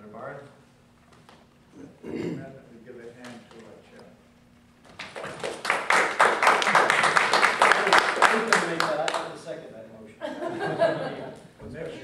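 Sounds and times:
group applause: 4.9 - 9.4.

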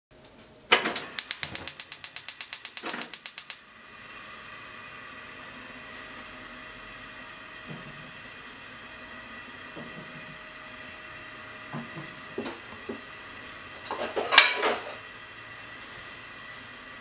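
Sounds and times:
spark igniter ticking rapidly: 1.0 - 3.6
gas burner hiss: 1.0 - 17.0.

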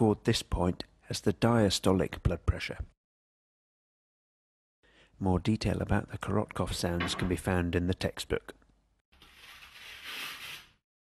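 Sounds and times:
velcro tearing apart: 9.2 - 10.8.

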